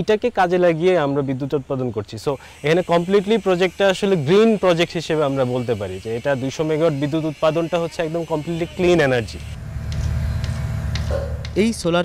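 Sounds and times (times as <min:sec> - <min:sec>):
faint hum: 0:01.0 - 0:11.8
man's voice: 0:04.0 - 0:09.4
steady low rumble: 0:09.5 - 0:11.9.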